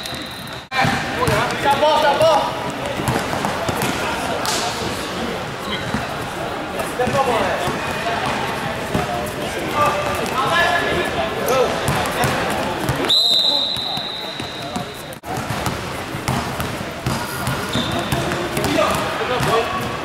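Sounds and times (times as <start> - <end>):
referee's whistle: 0.0 - 0.7, 13.0 - 15.1.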